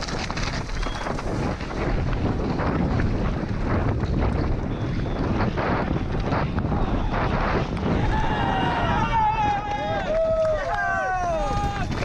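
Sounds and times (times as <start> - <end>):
bike rattling over dirt trail: 0.0 - 12.0
wind rushing over microphone: 0.0 - 12.0.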